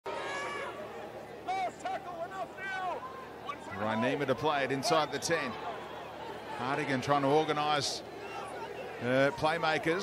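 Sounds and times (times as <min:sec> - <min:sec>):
man commentating: 0:06.6 - 0:08.0, 0:09.0 - 0:10.0.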